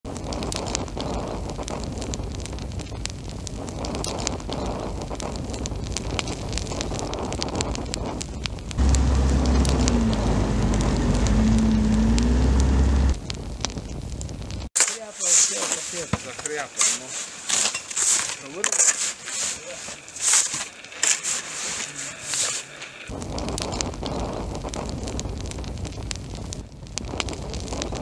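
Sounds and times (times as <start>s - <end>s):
crackling hissing noise: 0.1s - 28.0s
loud low rumbling drone: 8.8s - 13.2s.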